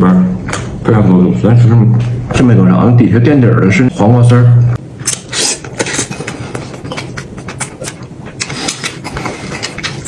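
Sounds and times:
man slurping and chewing noodles: 0:05.0 - 0:10.0
mouth clicks and smacks: 0:05.0 - 0:10.0.

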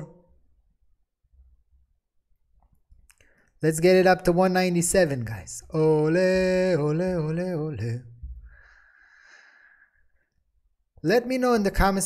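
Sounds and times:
faint exhaled breath: 0:08.4 - 0:10.3.

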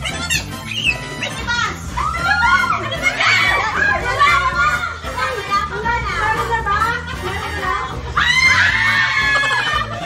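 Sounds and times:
woman shrieking: 0:08.2 - 0:10.0.

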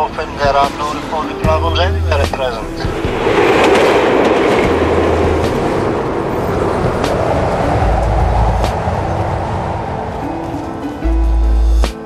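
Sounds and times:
train passing rumble: 0:00.0 - 0:12.0.

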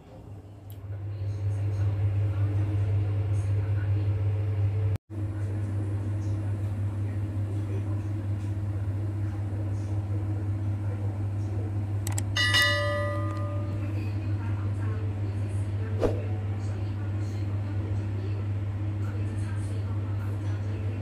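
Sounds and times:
click: 0:12.0 - 0:12.3
bright bell ding: 0:12.1 - 0:13.9.

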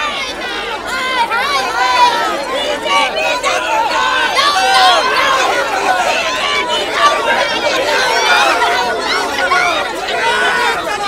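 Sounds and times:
crowd of women shouting: 0:00.0 - 0:11.0.

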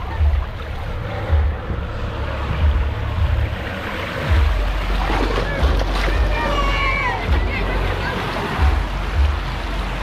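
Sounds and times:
low thumps: 0:00.0 - 0:06.4
water rushing down a slide: 0:04.2 - 0:09.3.

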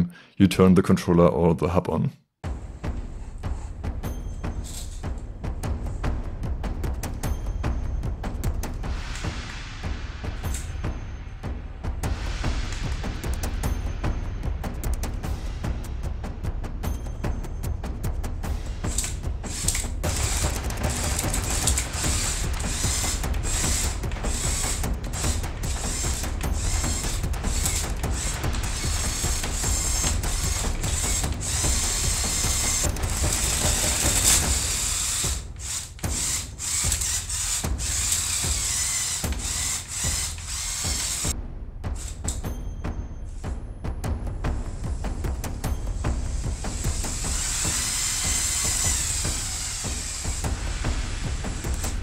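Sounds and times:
plastic gears and tracks rattling: 0:18.9 - 0:41.3, 0:47.2 - 0:50.4
toy motors whirring: 0:18.9 - 0:41.3, 0:42.0 - 0:42.4, 0:46.3 - 0:52.0.

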